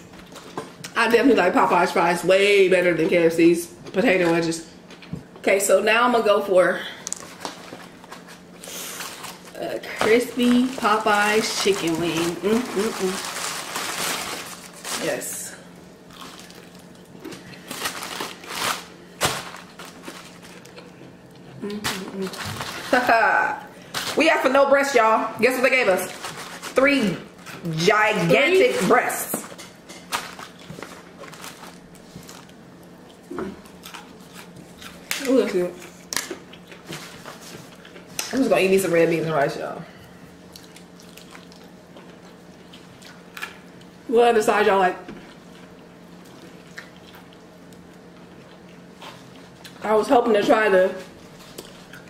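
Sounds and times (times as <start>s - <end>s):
faint hum: 0.0s - 52.0s
crunching fried chicken: 16.0s - 21.2s, 40.4s - 43.9s
wet chewing clicks: 40.5s - 43.9s.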